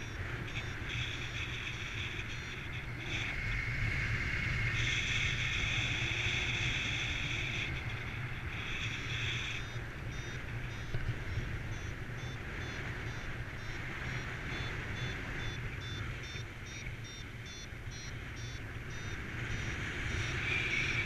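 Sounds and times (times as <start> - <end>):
variometer beeping in high pips: 0.0 - 3.2, 7.1 - 21.0.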